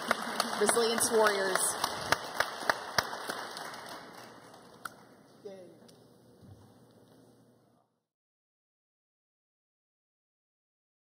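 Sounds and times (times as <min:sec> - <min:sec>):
audience applause: 0:00.0 - 0:05.1.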